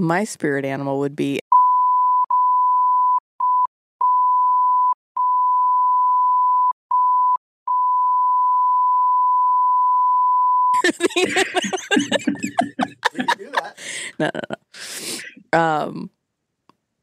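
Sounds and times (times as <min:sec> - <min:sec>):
speech: 0:00.0 - 0:01.4, 0:10.8 - 0:16.1
censor beep tone: 0:01.5 - 0:10.7.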